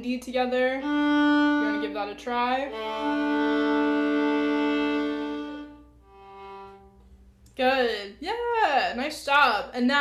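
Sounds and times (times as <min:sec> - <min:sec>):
violin double stops: 0:02.7 - 0:07.2.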